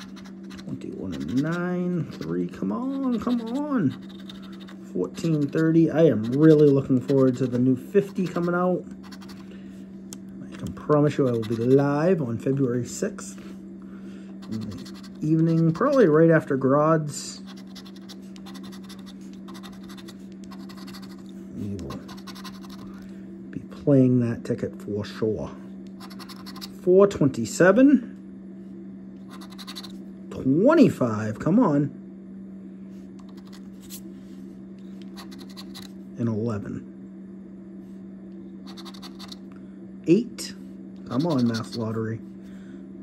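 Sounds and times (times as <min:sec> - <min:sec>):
coin scratching scratch-off ticket: 0:00.0 - 0:09.4, 0:11.0 - 0:11.8, 0:14.4 - 0:16.2, 0:17.4 - 0:21.2, 0:21.9 - 0:23.0, 0:26.0 - 0:26.8, 0:29.3 - 0:30.0, 0:33.3 - 0:34.0, 0:35.1 - 0:35.9, 0:38.7 - 0:39.4, 0:41.1 - 0:42.0
steady low hum: 0:00.0 - 0:43.0.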